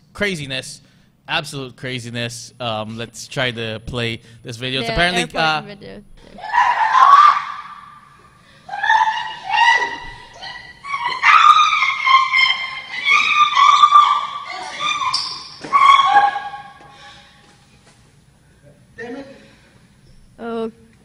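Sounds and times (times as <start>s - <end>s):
woman screaming: 6.4s - 8.1s, 8.7s - 16.8s.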